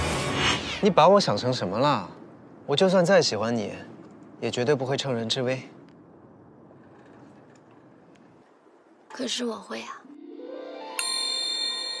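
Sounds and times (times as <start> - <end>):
soft musical tone: 10.0 - 12.0
bright chime ringing: 10.1 - 12.0.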